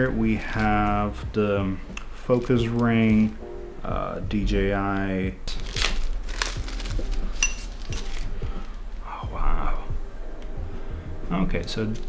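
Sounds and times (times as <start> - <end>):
plastic packaging crackling: 5.4 - 8.8.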